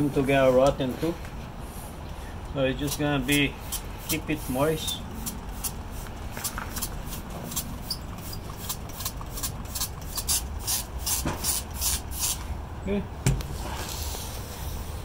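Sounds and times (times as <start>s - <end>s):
spray bottle squirting water: 4.8s - 12.5s
thump: 13.2s - 13.5s.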